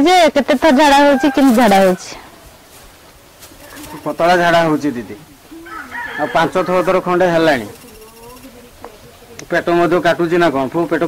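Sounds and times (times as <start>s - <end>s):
rooster crowing: 0.6s - 2.6s, 5.4s - 8.6s.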